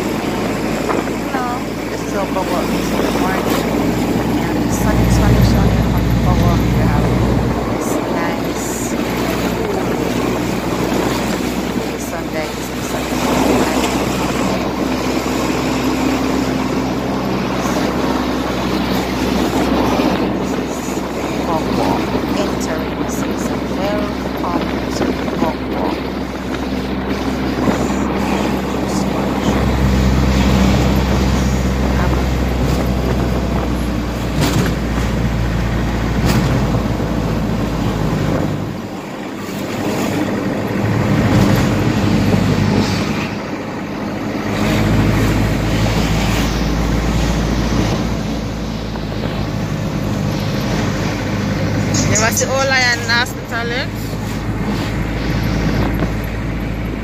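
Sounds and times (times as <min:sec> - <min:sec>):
minibus engine drone: 0:00.0 - 0:57.0.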